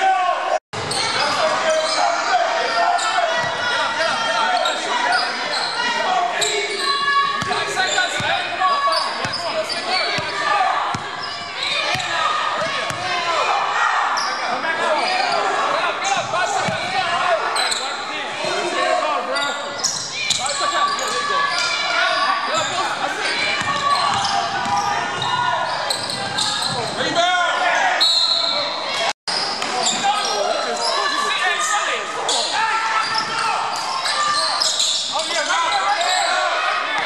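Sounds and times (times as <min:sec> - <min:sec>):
players shouting and chatter: 0:00.0 - 0:37.0.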